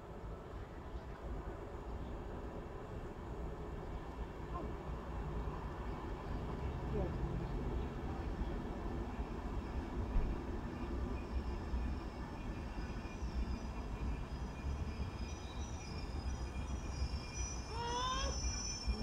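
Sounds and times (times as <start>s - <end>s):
train wheels rumbling on rail: 0.0s - 19.0s
thin high squeal: 12.7s - 19.0s.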